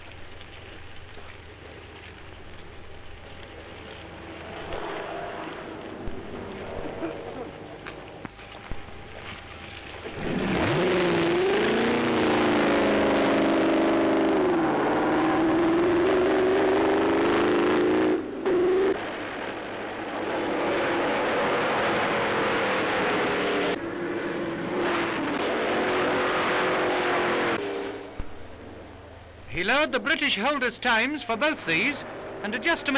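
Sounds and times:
racing car engine revving: 10.2 - 19.0, 20.4 - 28.1.

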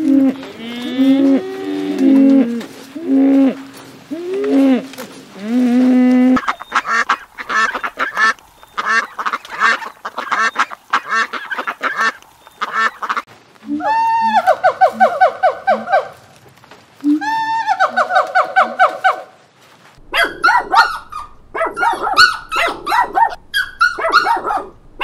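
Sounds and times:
gibbon whooping call: 0.0 - 9.1, 13.6 - 16.2, 20.1 - 25.0
ducks quacking: 0.0 - 16.2, 20.0 - 25.0
calf mooing: 0.1 - 8.3.

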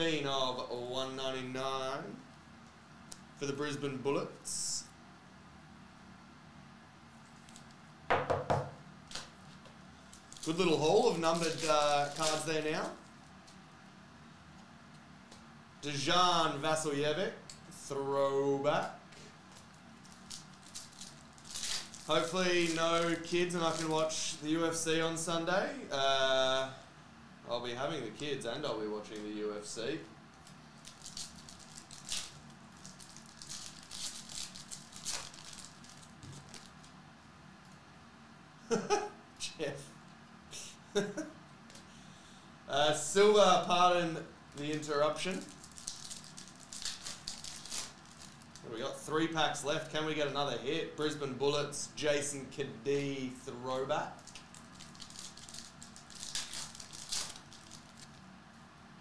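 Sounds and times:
trading cards being handled: 7.2 - 13.6, 19.5 - 24.1, 30.4 - 37.0
knocks on padded table: 8.1 - 8.8
foil wrapper crinkling: 10.1 - 13.1, 19.5 - 24.2, 30.4 - 37.0, 44.6 - 48.7, 54.2 - 58.2.

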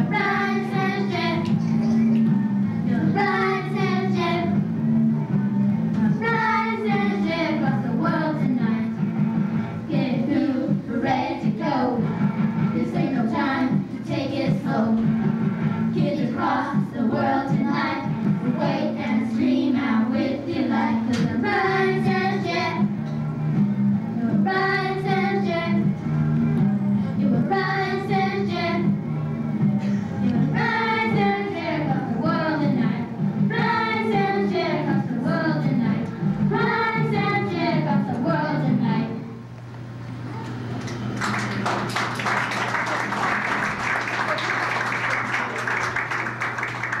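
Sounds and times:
girl singing into microphone: 2.8 - 4.6, 6.0 - 9.0, 9.9 - 12.1, 12.8 - 15.1, 15.9 - 22.9, 24.2 - 25.9, 29.9 - 39.2
audience applauding: 40.7 - 47.0.

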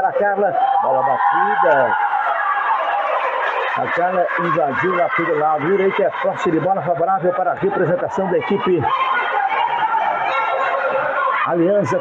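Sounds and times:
crowd shouting in gymnasium: 0.0 - 12.0
commentator speaking: 3.8 - 8.9, 11.4 - 12.0.

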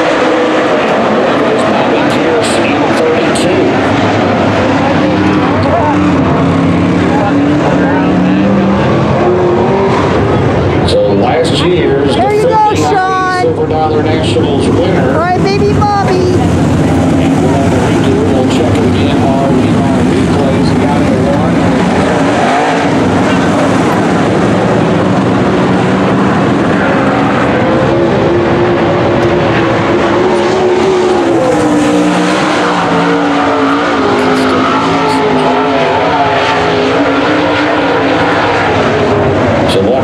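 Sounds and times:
race car engines racing: 0.0 - 40.0.

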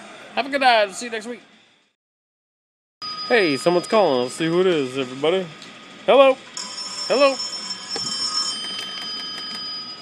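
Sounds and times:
telephone ringing: 6.6 - 10.0.

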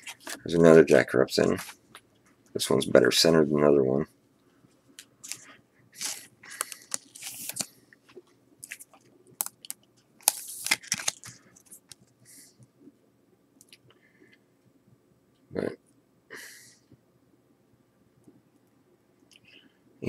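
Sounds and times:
plastic rustling: 5.2 - 7.7, 8.6 - 12.1.

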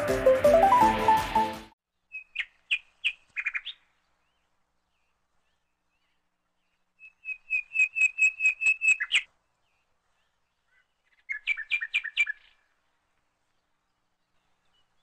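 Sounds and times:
bird whistling song: 2.1 - 3.8, 7.0 - 9.3, 11.2 - 12.6.

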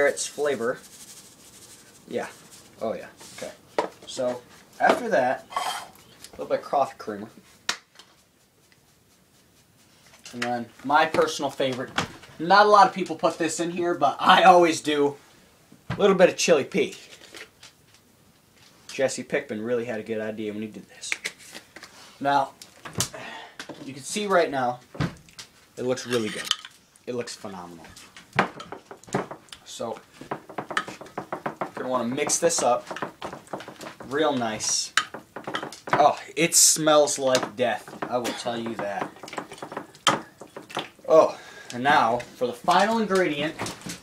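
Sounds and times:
spice jar rattling: 30.4 - 36.2, 37.2 - 41.0.

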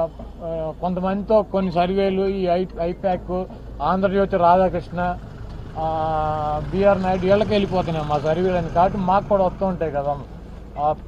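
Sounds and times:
man speaking: 0.0 - 5.2, 5.8 - 11.0.

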